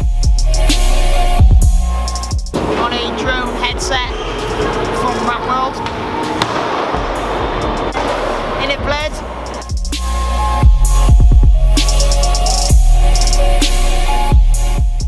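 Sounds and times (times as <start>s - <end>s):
electronic background music: 0.0s - 15.0s
distant voices: 2.5s - 9.7s.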